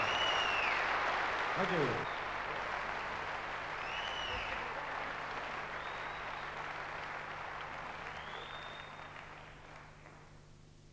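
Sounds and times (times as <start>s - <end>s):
audience applauding: 0.0s - 10.4s.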